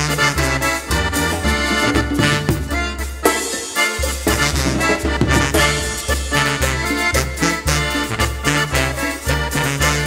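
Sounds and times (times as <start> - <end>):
repeating low bass notes: 0.0 - 3.3, 4.0 - 10.0
accordion melody: 0.0 - 10.0
steady beat: 0.1 - 9.8.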